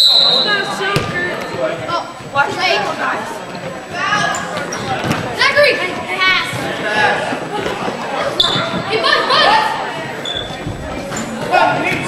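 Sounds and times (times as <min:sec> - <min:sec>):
short high squeaks: 0:08.4 - 0:08.8, 0:10.2 - 0:11.3.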